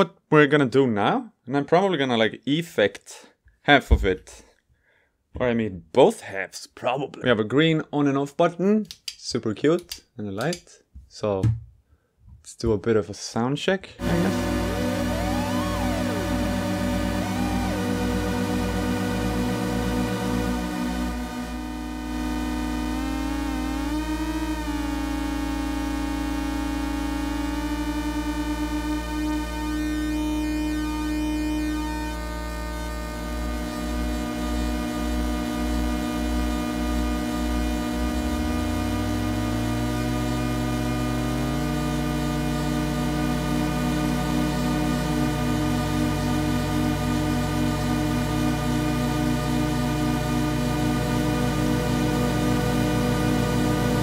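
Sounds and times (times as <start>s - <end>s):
layered synthesizer drone: 14.0s - 54.0s.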